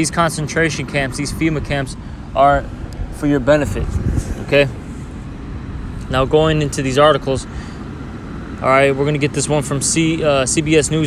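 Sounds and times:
low road rumble: 0.0s - 11.0s.

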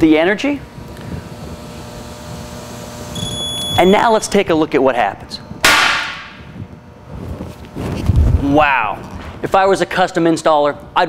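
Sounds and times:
capacitor bang: 5.6s - 6.6s.

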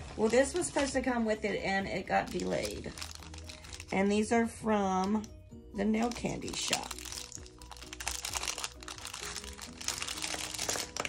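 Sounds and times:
cellophane bag crinkling: 0.0s - 1.1s, 2.1s - 4.3s, 6.0s - 11.0s
soft background music: 0.0s - 11.0s.

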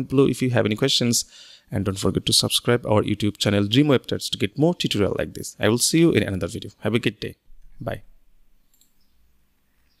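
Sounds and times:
faint computer mouse clicks: 8.7s - 9.0s.

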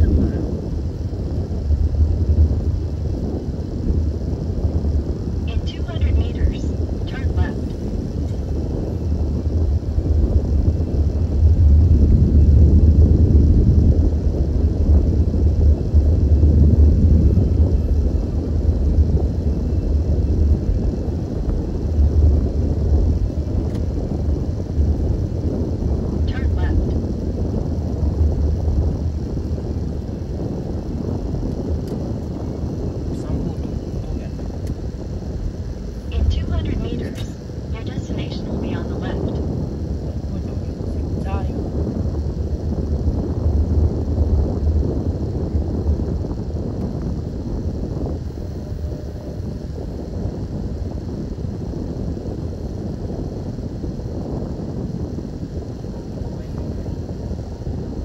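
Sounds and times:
car interior road noise: 0.0s - 52.8s.

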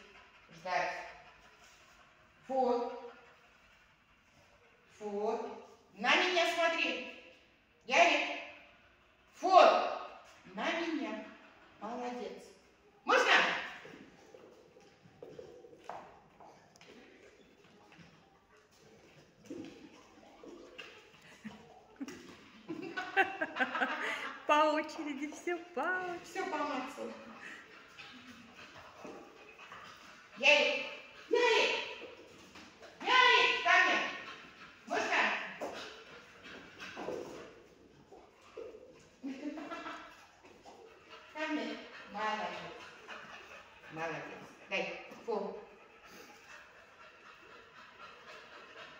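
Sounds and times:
dog mouthing rubber balls: 13.2s - 22.9s, 24.4s - 45.3s.

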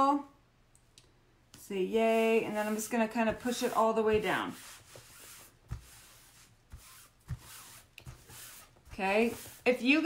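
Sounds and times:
palms rubbing over screen: 1.6s - 10.0s.

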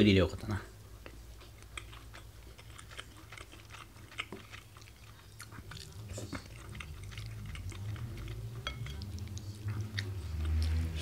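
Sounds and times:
person chewing food: 0.8s - 11.0s.

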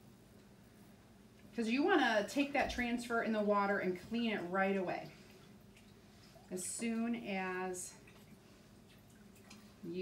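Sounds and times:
woman's voice: 1.6s - 5.2s, 6.5s - 8.0s
faint water sounds: 1.7s - 10.0s.

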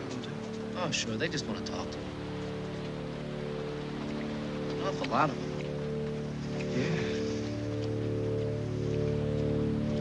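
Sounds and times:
soft sustained chord: 0.0s - 10.0s.

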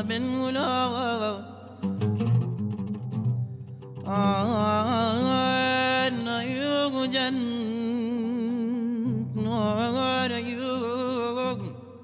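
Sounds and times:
man singing melismatic line: 0.0s - 1.8s, 4.0s - 12.0s
plucked oud notes: 0.0s - 12.0s.

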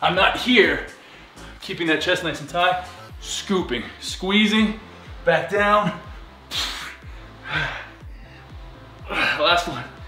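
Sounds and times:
music with steady beat: 0.0s - 10.0s
man breathing hard: 0.9s - 1.6s, 6.0s - 9.5s.

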